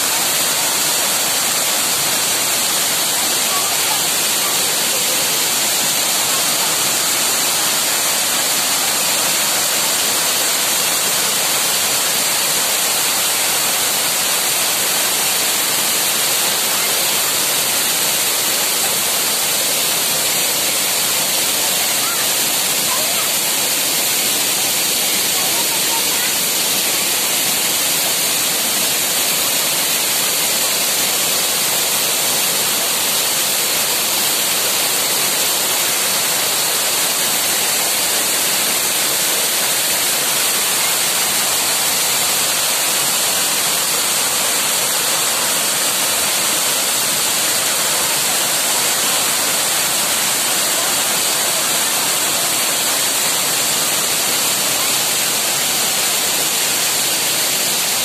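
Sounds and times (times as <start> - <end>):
waterfall rushing over rocks: 0.0 - 58.0.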